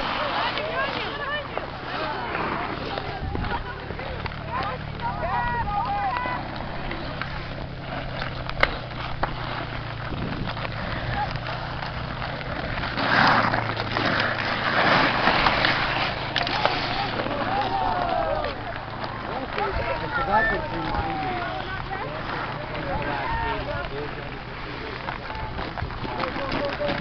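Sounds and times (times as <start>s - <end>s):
players shouting: 0.0s - 7.8s, 14.0s - 24.4s
hockey stick hitting puck: 0.0s - 27.0s
ice skate blades scraping: 0.0s - 27.0s.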